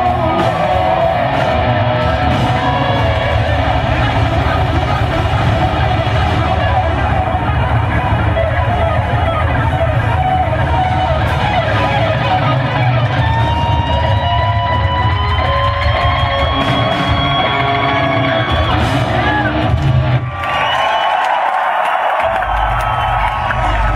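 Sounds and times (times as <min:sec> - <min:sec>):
heavy metal band playing: 0:00.0 - 0:20.8, 0:22.2 - 0:23.9.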